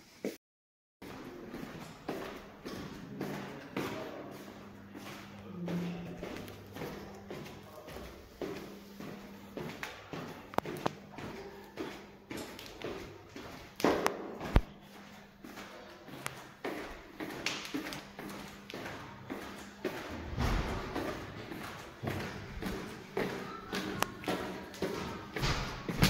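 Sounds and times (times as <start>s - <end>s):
footsteps on tiled stairs: 1.0s - 26.0s.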